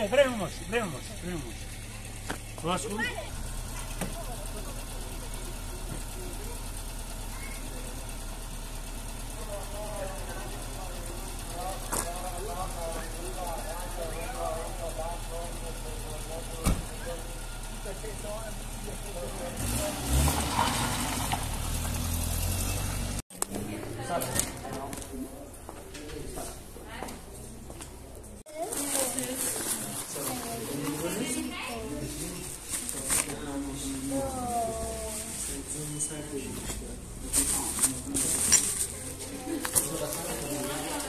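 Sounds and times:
car engine idling and revving: 0.0s - 23.7s, 30.7s - 41.0s
car door shutting: 16.6s - 17.0s.

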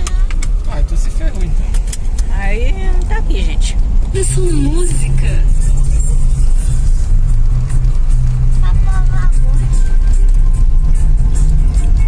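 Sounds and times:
car engine and road rumble: 0.0s - 12.0s
music from car stereo: 4.3s - 12.0s.

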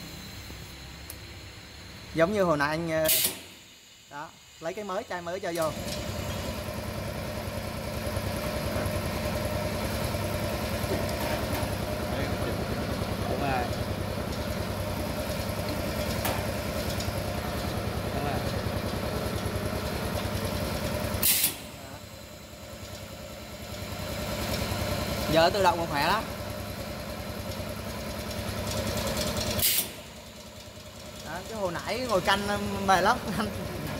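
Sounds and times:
filling machine pulsing hum: 0.0s - 33.9s
short sharp hiss: 3.0s - 3.7s, 21.2s - 21.7s, 29.6s - 30.1s.

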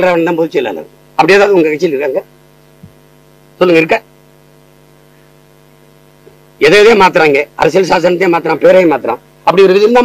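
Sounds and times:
man speaking: 0.0s - 2.3s, 3.6s - 4.1s, 6.6s - 10.0s
low electrical hum: 0.0s - 10.0s.

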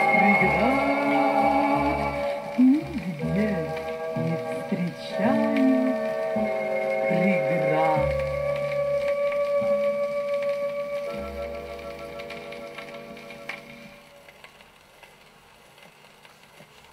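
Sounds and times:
vocal song with ensemble: 0.0s - 6.2s
record surface noise: 0.0s - 16.9s.

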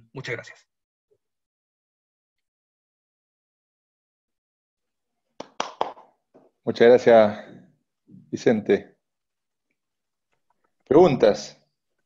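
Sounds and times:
hand claps: 5.4s - 6.2s.

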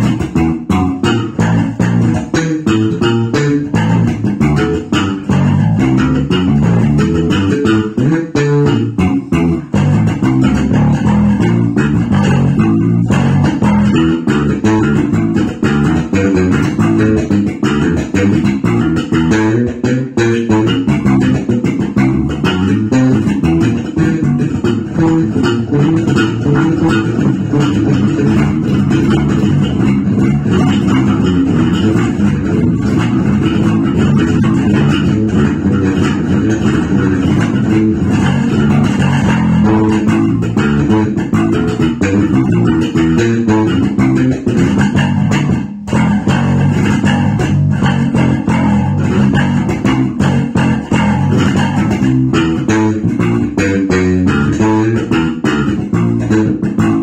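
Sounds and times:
fingerstyle electric bass groove: 0.0s - 57.0s.

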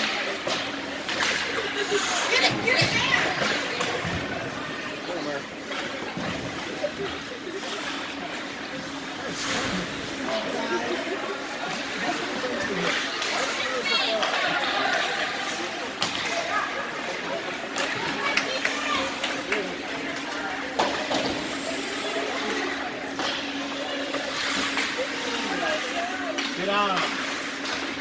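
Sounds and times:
skate blades scraping ice: 0.1s - 4.6s, 5.6s - 28.0s.

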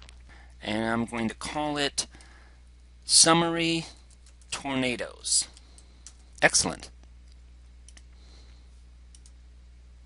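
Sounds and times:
low electrical hum: 0.0s - 10.0s
computer mouse clicks: 7.3s - 8.2s, 9.1s - 9.4s.

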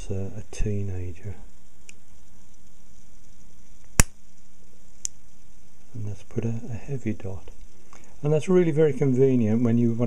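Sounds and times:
dot punch sharp snap: 3.9s - 4.2s.

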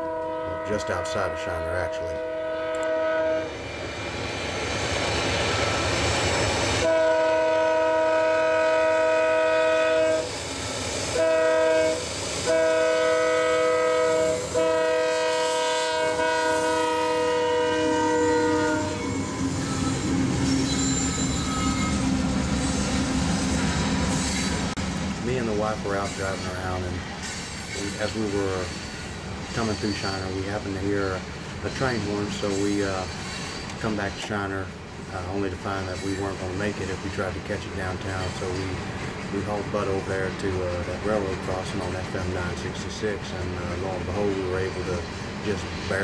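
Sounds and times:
locomotive air horn: 0.0s - 3.5s, 6.8s - 10.3s, 11.1s - 22.0s.

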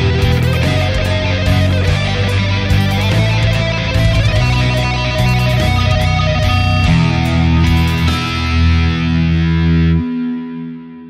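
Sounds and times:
distorted electric guitar lead: 0.0s - 11.0s.

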